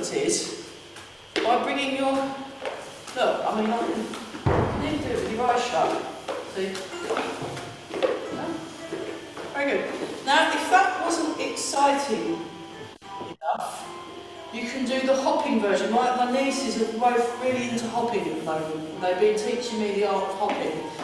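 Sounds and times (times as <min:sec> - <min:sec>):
people talking: 0:00.0 - 0:00.5, 0:01.4 - 0:02.4, 0:03.1 - 0:07.2, 0:08.3 - 0:08.7, 0:09.6 - 0:12.4, 0:13.4 - 0:13.9, 0:14.6 - 0:21.0
low thud: 0:04.4 - 0:05.4.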